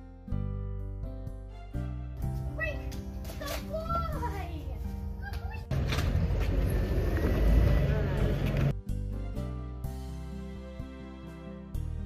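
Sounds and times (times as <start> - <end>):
people talking: 2.6 - 5.8, 7.5 - 8.7
traffic rumble: 3.4 - 8.8.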